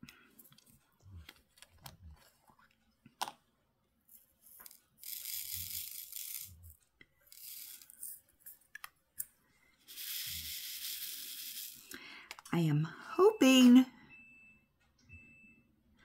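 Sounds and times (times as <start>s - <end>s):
small drills pouring in plastic tray: 4.6s - 6.6s, 7.3s - 8.1s, 9.9s - 11.9s.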